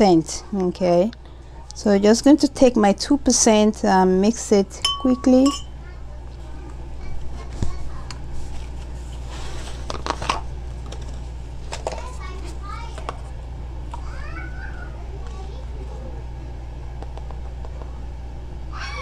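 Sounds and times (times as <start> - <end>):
steady low hum: 0.0 - 19.0
faint high voices: 13.9 - 16.2, 17.8 - 19.0.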